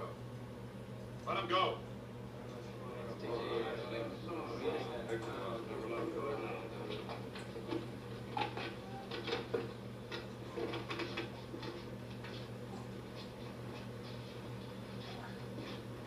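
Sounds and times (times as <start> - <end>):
murmuring voices: 2.5 - 7.3
footsteps on floor: 10.5 - 16.0.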